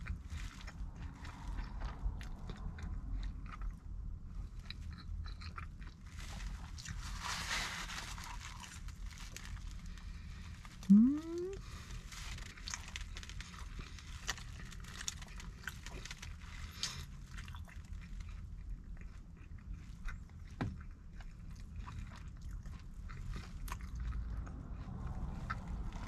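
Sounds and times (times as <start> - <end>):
person chewing pizza: 0.0 - 7.1, 8.1 - 26.0
low background rumble: 0.0 - 26.0.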